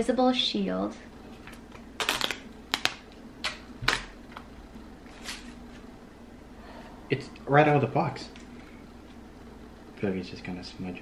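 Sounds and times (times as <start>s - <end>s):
packaging clicks and crinkles: 1.5s - 4.5s.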